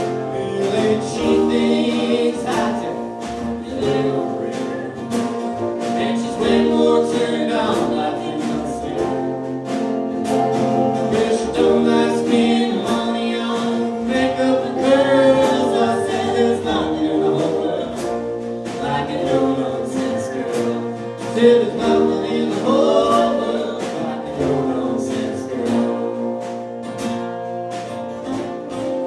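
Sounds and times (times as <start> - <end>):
man and woman singing together: 0.0 - 9.7, 10.8 - 26.6
acoustic guitar: 0.0 - 29.0
drums: 0.0 - 29.0
upright bass: 0.0 - 29.0.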